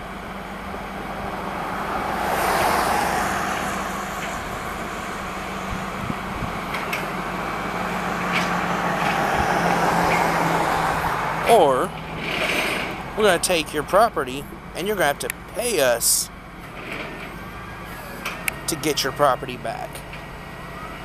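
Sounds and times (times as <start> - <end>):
road traffic noise: 0.0 - 21.0
truck engine humming: 0.0 - 21.0.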